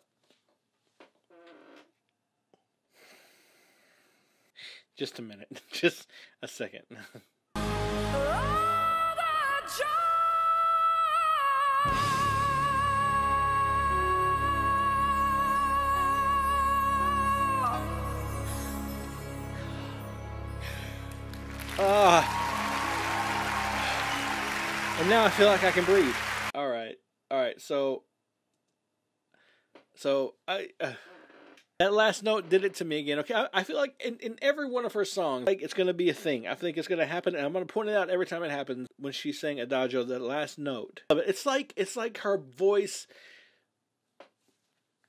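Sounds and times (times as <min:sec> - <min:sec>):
man breathing faintly: 0:02.9 - 0:04.8, 0:43.1 - 0:43.6
man exclaiming ah: 0:21.8 - 0:22.6.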